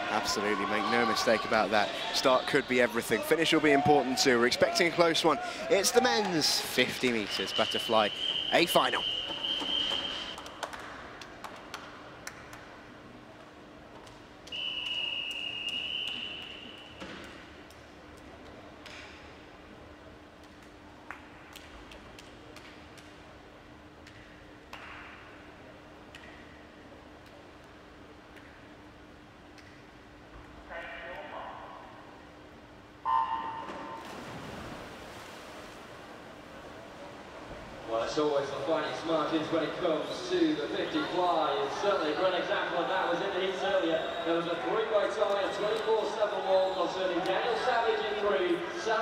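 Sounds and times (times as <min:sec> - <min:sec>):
faint steady hum: 0:00.0 - 0:49.0
long whistle blast: 0:07.4 - 0:10.4, 0:14.5 - 0:17.0, 0:33.0 - 0:34.0.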